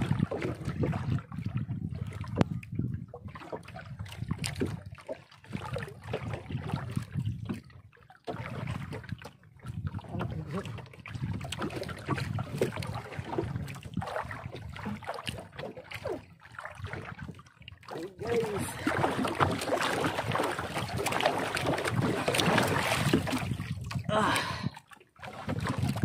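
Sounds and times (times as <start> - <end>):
wind buffeting microphone: 0.0 - 7.8, 8.4 - 15.0, 18.2 - 24.8
water sloshing against boat hull: 0.0 - 26.0.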